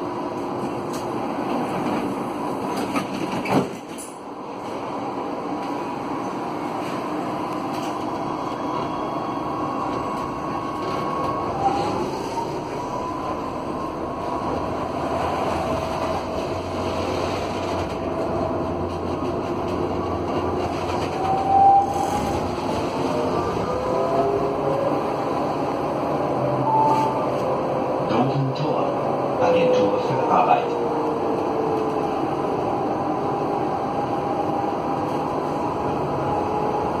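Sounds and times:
tram bump: 0:00.0 - 0:04.9, 0:09.8 - 0:33.1
wheels rumbling on rails: 0:00.0 - 0:37.0
tram motor whine rising: 0:04.9 - 0:28.2.

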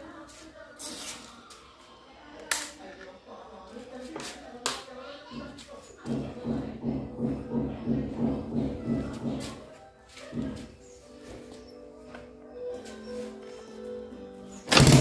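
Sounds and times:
motorcycle engine running unevenly: 0:14.7 - 0:15.0.

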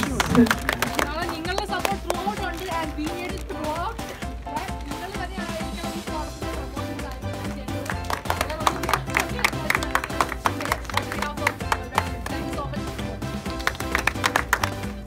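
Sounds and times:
audience clapping: 0:00.0 - 0:03.5, 0:07.7 - 0:15.0
music over speakers: 0:00.0 - 0:15.0.

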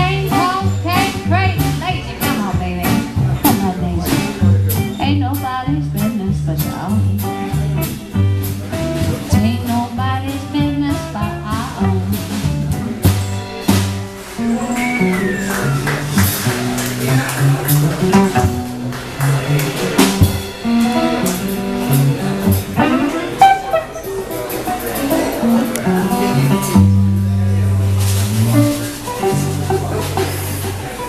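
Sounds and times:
guitar: 0:00.0 - 0:31.0
jazz band playing: 0:00.0 - 0:31.0
walking bass line: 0:00.0 - 0:31.0.

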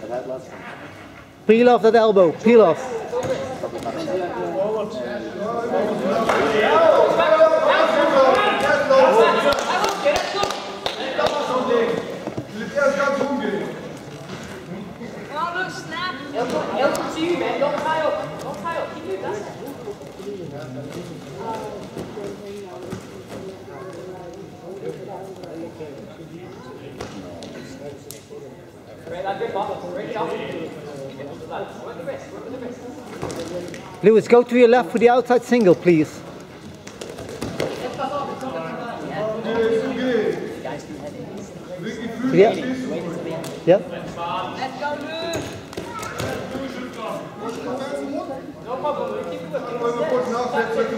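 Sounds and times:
faint voices in a hall: 0:00.0 - 0:50.9.

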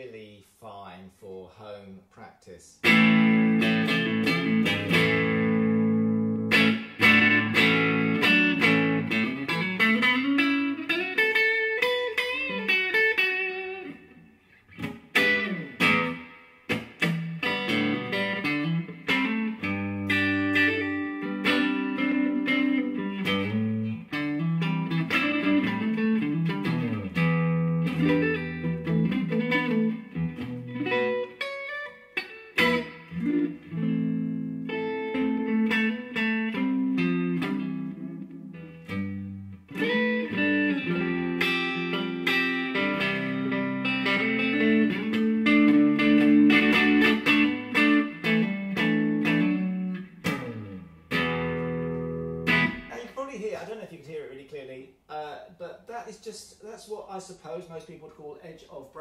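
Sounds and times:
electric guitar playing: 0:02.8 - 0:53.1.

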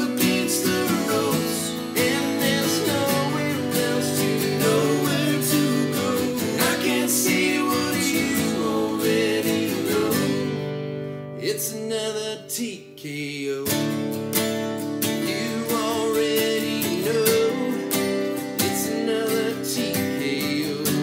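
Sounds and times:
people singing in harmony: 0:00.0 - 0:10.7
acoustic guitars strumming: 0:00.0 - 0:21.0.

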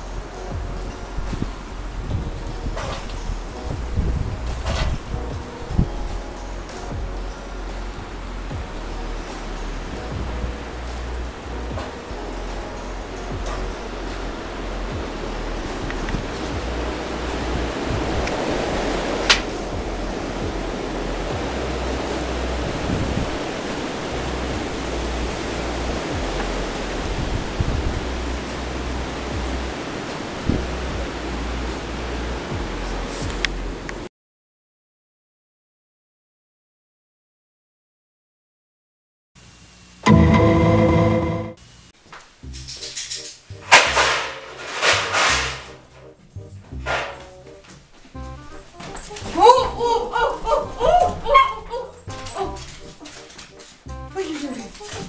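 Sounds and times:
gusty wind buffeting microphone: 0:00.5 - 0:06.2, 0:13.3 - 0:31.3.

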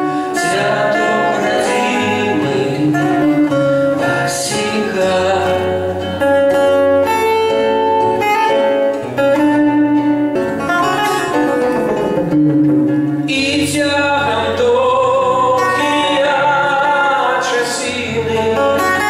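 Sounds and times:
man singing long held notes: 0:00.0 - 0:06.1, 0:13.3 - 0:19.0
acoustic guitars: 0:00.0 - 0:19.0.

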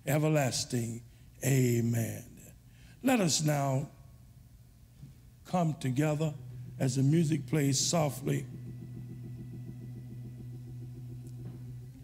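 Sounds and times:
church organ chord: 0:05.7 - 0:12.0.

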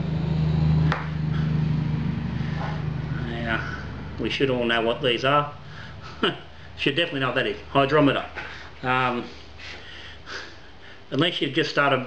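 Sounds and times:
machine humming: 0:00.0 - 0:11.2.

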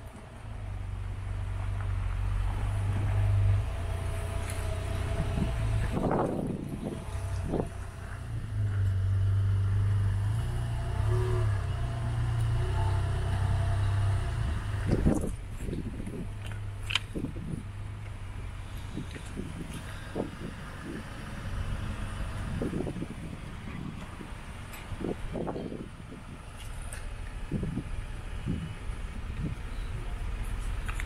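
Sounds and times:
diesel engine idling: 0:00.0 - 0:31.0.

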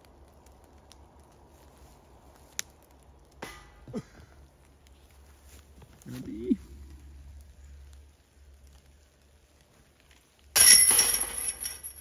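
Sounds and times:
chains ringing and jingling: 0:10.6 - 0:12.0
disc striking metal chains: 0:10.6 - 0:12.0.

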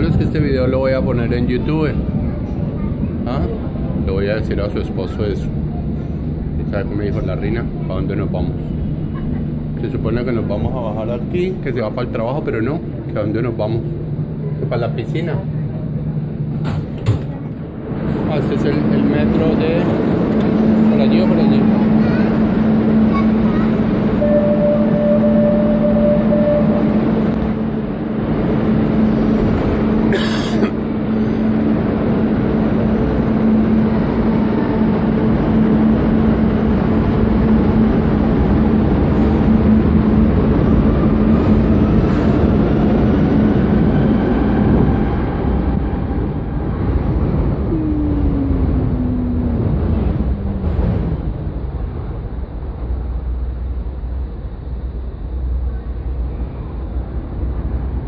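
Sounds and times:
metro train rumbling: 0:00.0 - 0:58.0
train whine rising in pitch: 0:24.1 - 0:29.3, 0:47.5 - 0:51.5.

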